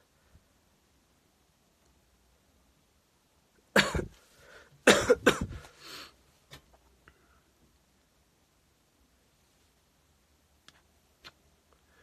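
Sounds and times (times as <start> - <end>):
man coughing: 3.7 - 4.2, 4.8 - 5.7.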